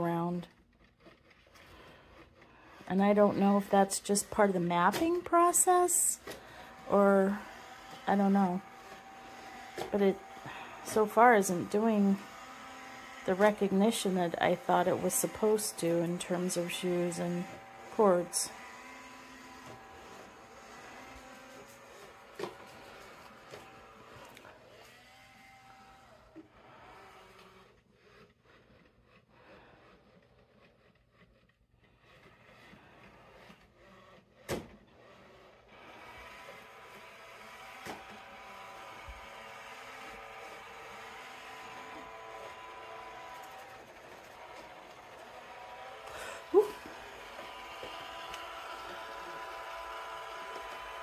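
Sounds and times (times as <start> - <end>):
robot vacuum whirring: 0.0 - 51.0.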